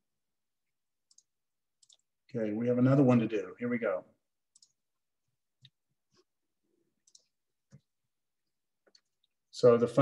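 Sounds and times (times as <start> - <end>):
computer mouse clicks: 1.0 - 2.1, 4.5 - 4.8, 7.0 - 7.9.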